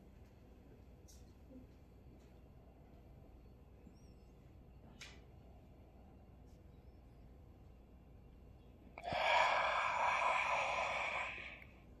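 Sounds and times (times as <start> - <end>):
long breathy exhale: 9.0 - 11.9.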